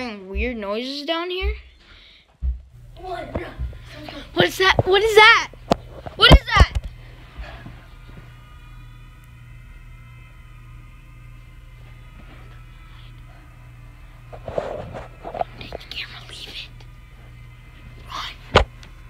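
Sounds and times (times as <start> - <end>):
low hum: 1.5 - 19.0.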